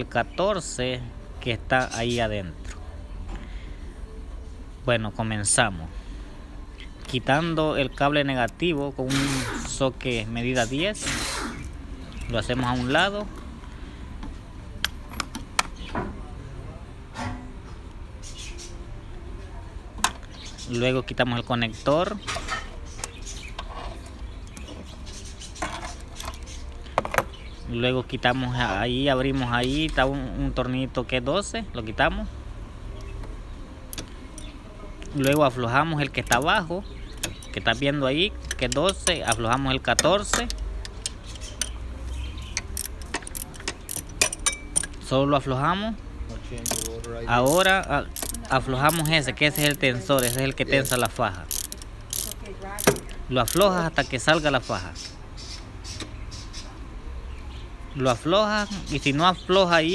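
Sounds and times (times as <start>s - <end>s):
low background hum: 0.0s - 59.9s
wrench and cable metallic clicks: 35.1s - 35.5s, 42.6s - 45.0s, 46.6s - 53.7s.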